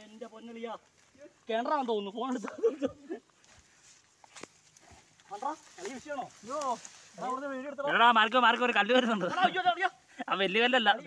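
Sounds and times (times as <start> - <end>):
movement through dry grass: 0.0 - 10.4.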